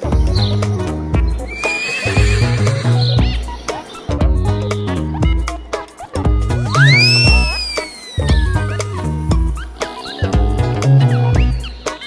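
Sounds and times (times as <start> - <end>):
background music with steady beat: 0.0 - 12.0
horse whinnying: 1.4 - 3.5, 6.7 - 8.8.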